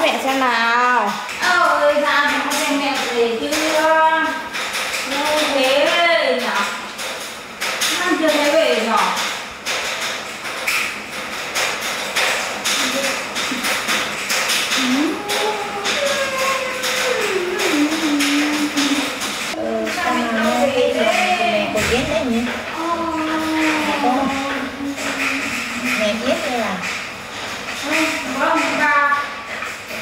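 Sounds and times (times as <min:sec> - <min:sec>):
sing-song voice: 0:14.8 - 0:26.0.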